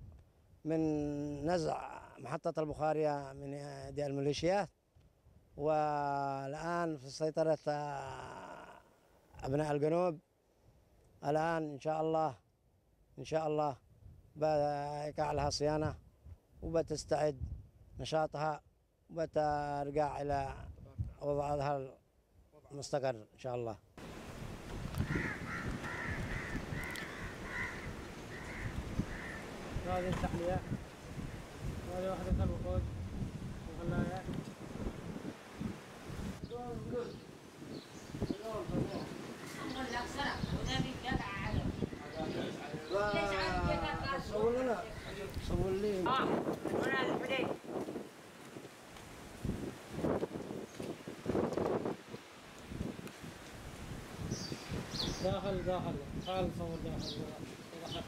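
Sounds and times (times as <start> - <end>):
low wind rumble: 24.0 - 58.0
crows cawing: 25.0 - 29.9, 39.3 - 40.5, 41.9 - 44.0, 44.8 - 45.3.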